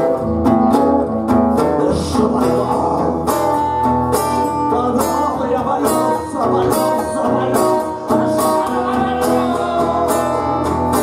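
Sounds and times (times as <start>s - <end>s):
acoustic guitar accompaniment: 0.0s - 11.0s.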